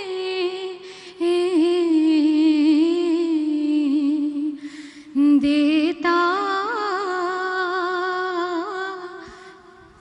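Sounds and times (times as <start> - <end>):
woman singing into a microphone: 0.0 - 10.0
woman breathing: 0.8 - 1.2, 4.6 - 5.2, 9.2 - 10.0.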